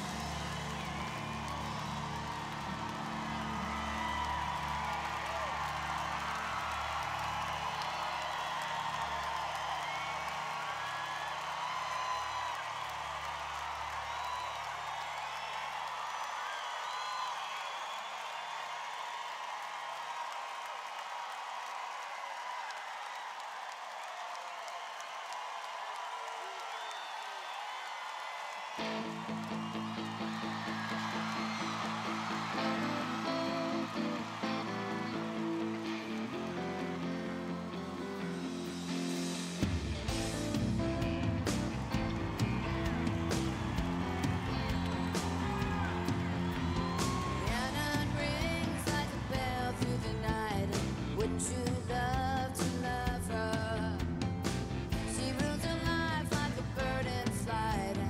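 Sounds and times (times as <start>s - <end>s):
band playing pulsing beat and guitar: 0.0s - 3.5s, 28.8s - 58.0s
crowd cheering and whooping: 0.0s - 58.0s.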